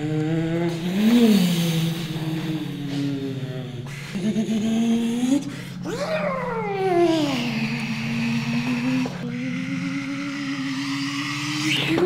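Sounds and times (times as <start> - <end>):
person humming a motor-like drone: 0.0 - 12.0.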